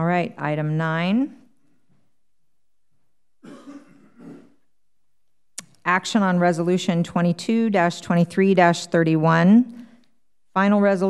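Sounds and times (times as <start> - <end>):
soft coughs: 3.4 - 4.7.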